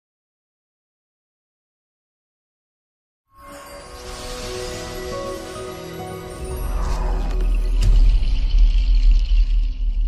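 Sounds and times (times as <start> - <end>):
deep cinematic rumble: 6.6 - 10.0.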